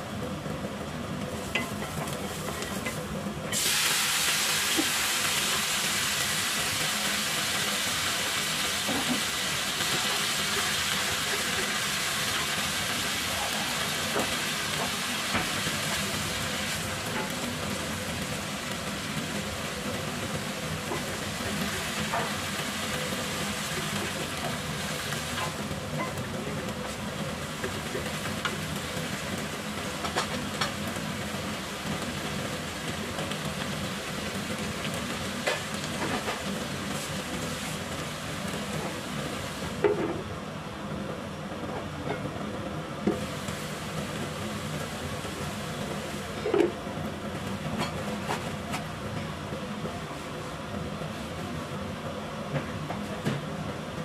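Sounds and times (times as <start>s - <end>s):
cabbage sizzling in hot oil: 1.3s - 39.9s, 43.1s - 48.7s.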